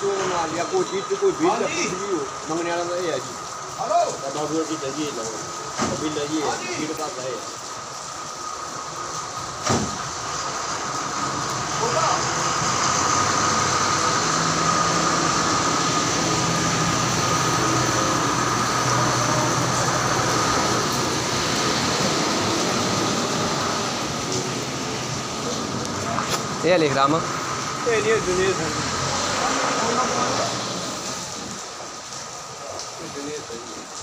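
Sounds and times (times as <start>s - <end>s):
sharp knock: 9.6s - 10.0s.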